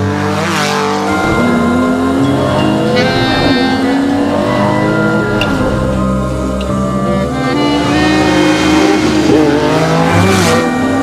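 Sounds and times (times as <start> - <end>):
race car engine at speed: 0.0 - 11.0.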